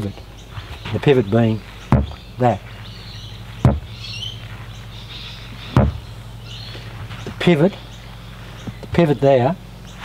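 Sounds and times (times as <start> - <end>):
birds chirping faintly: 0.0 - 10.0.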